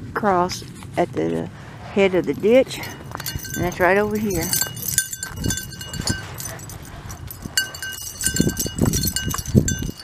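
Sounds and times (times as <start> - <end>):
small metal bell jingling: 2.1 - 10.0
footsteps on dirt: 2.2 - 10.0.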